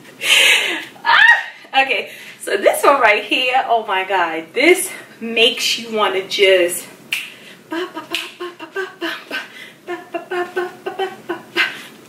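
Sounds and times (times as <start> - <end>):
sharp snaps: 7.1 - 7.4, 8.0 - 8.4
woman humming or singing: 7.7 - 11.9.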